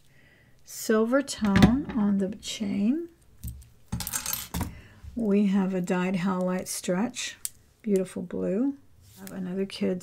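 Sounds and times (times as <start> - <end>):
jewelry clinking and jingling: 3.4 - 4.8.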